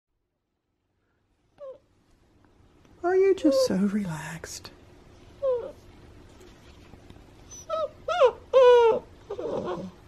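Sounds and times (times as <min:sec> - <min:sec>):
puppy whimpering: 0:01.6 - 0:01.9, 0:05.4 - 0:05.9, 0:07.4 - 0:10.0.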